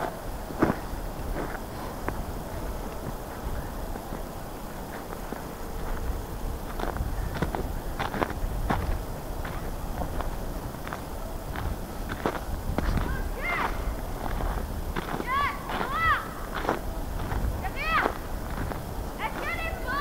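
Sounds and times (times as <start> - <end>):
footsteps crunching in snow: 0.0 - 20.0.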